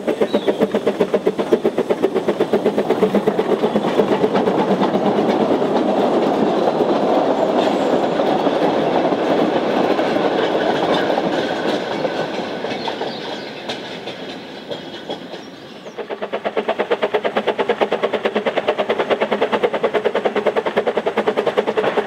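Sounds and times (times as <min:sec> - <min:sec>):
steam locomotive chuffing: 0:00.0 - 0:22.0
train wheels rolling on rails: 0:00.0 - 0:22.0.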